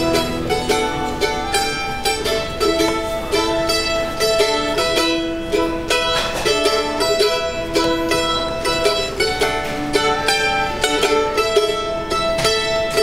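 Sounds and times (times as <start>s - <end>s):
upright bass: 0.0s - 9.0s
acoustic guitar: 0.0s - 13.0s
mandolin melody: 0.0s - 13.0s.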